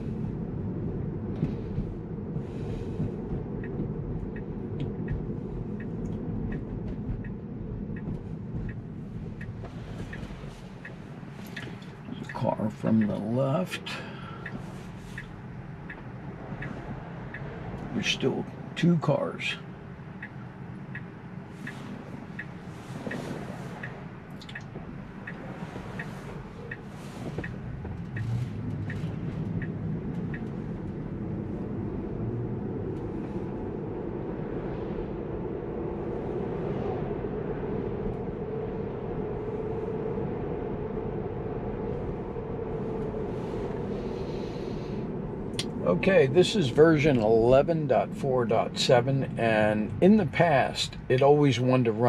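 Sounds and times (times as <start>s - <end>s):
turn signal ticking: 0.0s - 52.0s
tyre and road noise: 0.0s - 52.0s.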